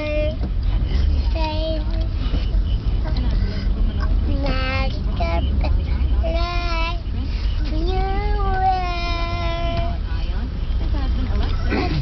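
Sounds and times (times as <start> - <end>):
car cabin rumble: 0.0 - 12.0
girl singing unaccompanied: 1.2 - 2.2, 4.3 - 10.0.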